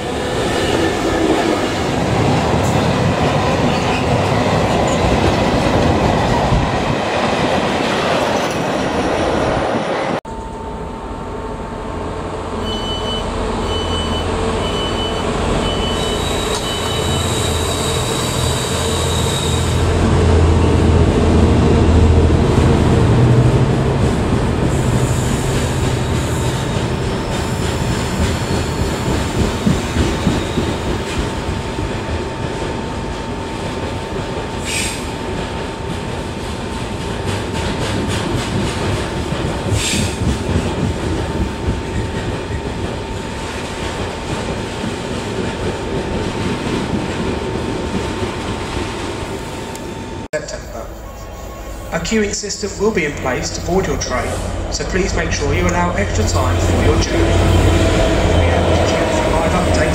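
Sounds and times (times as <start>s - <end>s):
diesel locomotive rumble: 49.2s - 59.9s.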